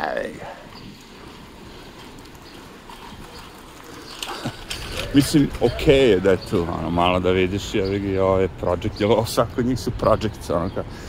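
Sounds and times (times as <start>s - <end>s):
footsteps on sidewalk: 0.0s - 11.0s
street traffic rumble: 0.0s - 11.0s.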